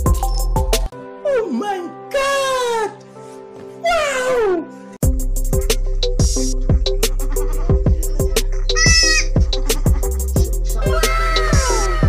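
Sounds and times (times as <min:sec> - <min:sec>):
hip-hop music with drum beat: 0:00.0 - 0:00.9, 0:05.0 - 0:12.0
goat kid bleating: 0:08.8 - 0:09.3.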